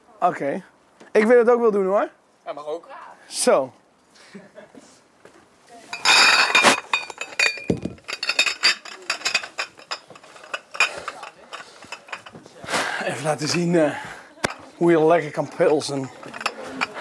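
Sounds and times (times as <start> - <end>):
glass bottles clinking: 5.9 - 17.0.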